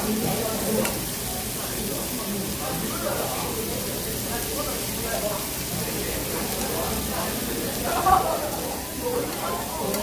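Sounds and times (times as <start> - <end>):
meat sizzling on grill: 0.0 - 10.0.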